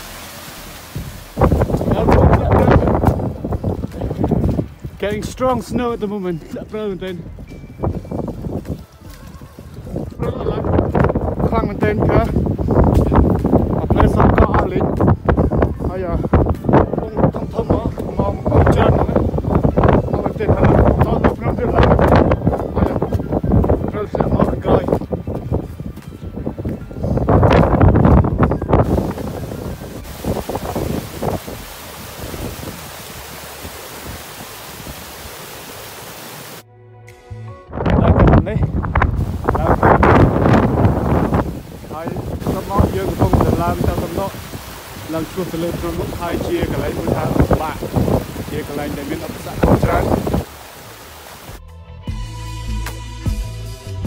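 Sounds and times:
small waterfall rushing: 0.0 - 4.4, 28.8 - 36.6, 39.2 - 51.6
stream cascading over boulders: 0.0 - 5.5, 27.2 - 36.6, 39.2 - 51.6
music with low bass: 0.0 - 33.0, 36.6 - 50.5, 51.4 - 54.0
wind buffeting microphone: 0.5 - 36.6, 37.7 - 51.6.

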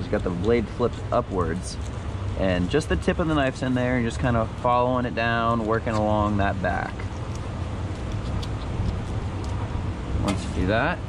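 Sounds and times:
knife scratching fish scales: 7.1 - 9.7.

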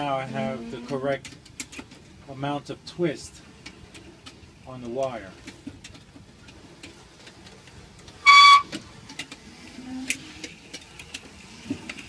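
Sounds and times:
high whistle-like tone: 8.2 - 8.7.

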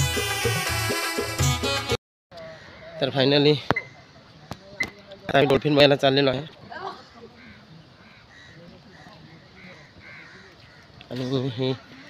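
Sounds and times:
faint bird calls: 2.3 - 5.0, 7.0 - 12.0.

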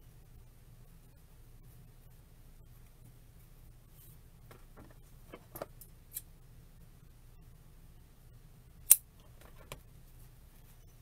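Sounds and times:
quiet room hum: 0.0 - 11.0.

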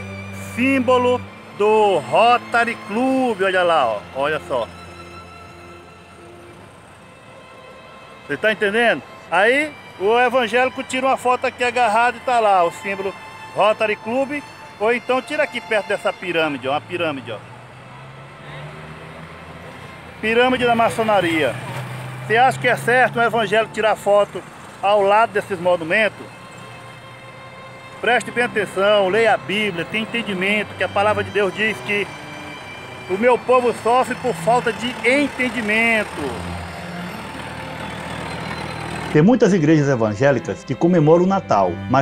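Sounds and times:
passing vehicle engine hum: 0.0 - 42.0
street noise: 0.0 - 42.0.

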